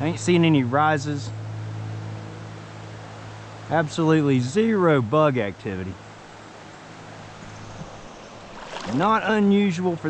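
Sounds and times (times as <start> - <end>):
river flowing: 1.4 - 5.2, 6.0 - 10.0.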